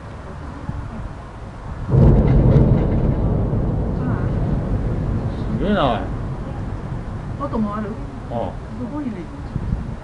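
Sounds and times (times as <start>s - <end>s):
distant explosion rumble: 1.7s - 10.0s.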